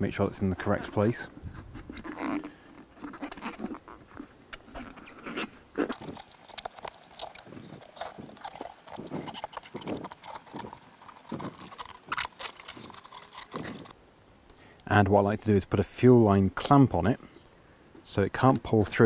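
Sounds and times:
rubber tube rubbing and knocking: 0.6 - 13.9.

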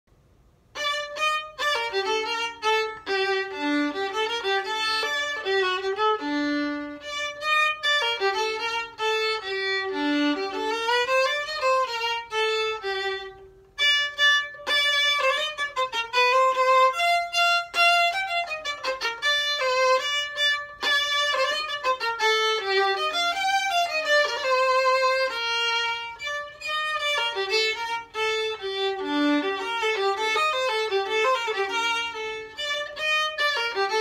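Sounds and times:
solo violin playing: 0.6 - 34.0.

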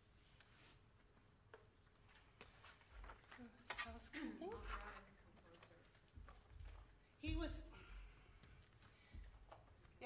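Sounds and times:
faint clicks and rustles: 0.2 - 10.0.

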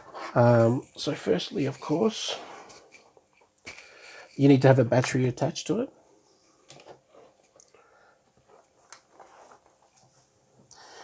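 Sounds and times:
soft handling rustles: 8.3 - 10.7.

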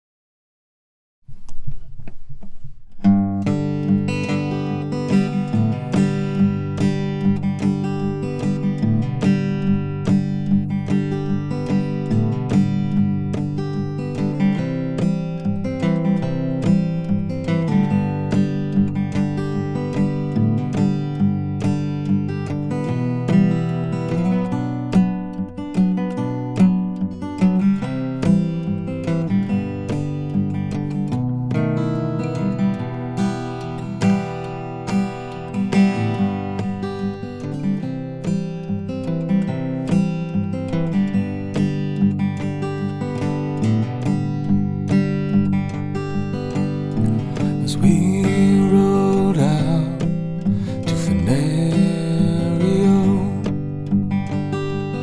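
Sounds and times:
fingerstyle acoustic guitar: 1.2 - 55.0.

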